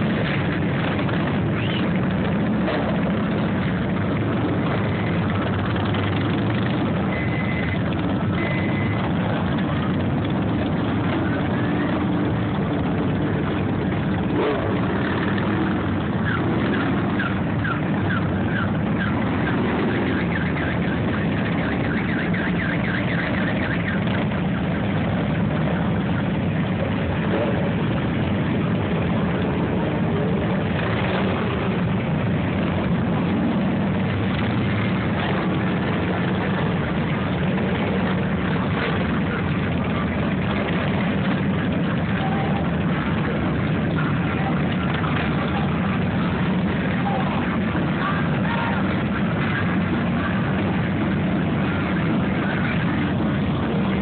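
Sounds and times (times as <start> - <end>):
motorcycle engines rumbling past: 0.0 - 54.0.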